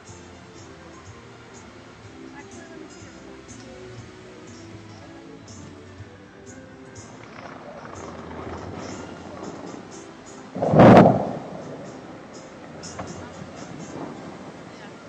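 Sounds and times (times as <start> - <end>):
music: 0.0 - 15.0
crowd voices: 1.8 - 15.0
loud water jet blast: 8.3 - 15.0.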